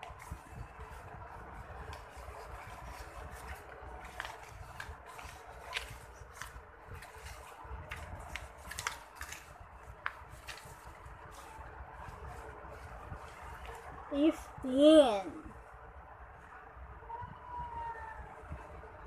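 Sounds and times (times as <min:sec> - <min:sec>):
paper rustling and crinkling: 0:00.0 - 0:14.0
low steady hum: 0:00.0 - 0:19.0.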